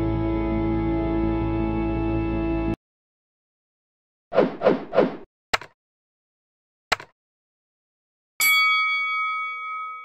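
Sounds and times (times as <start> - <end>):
bell-like notification chime: 8.4 - 10.0.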